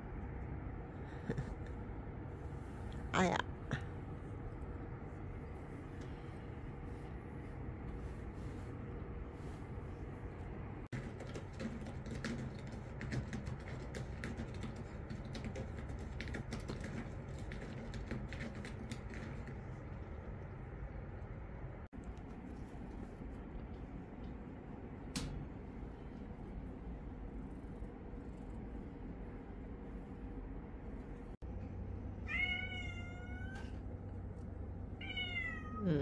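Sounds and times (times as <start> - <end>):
cat licking fur: 21.9 - 25.0
cat meowing: 32.2 - 33.8, 35.0 - 36.0.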